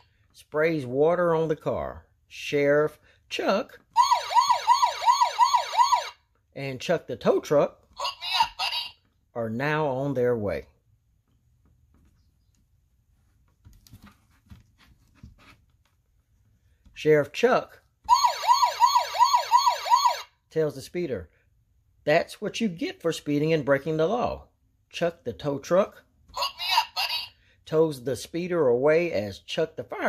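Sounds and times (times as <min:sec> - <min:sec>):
electronic police siren wail: 0:04.0 - 0:06.2, 0:18.1 - 0:20.3.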